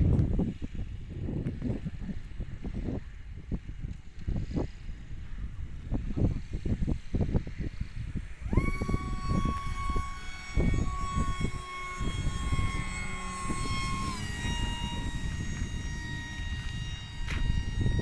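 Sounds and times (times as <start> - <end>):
model plane motor whine: 0.0 - 18.0
wind buffeting microphone: 0.0 - 18.0.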